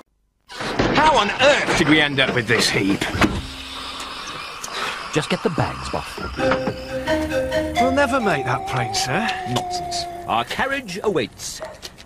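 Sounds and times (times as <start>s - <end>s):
car engine and road noise: 1.3s - 12.0s.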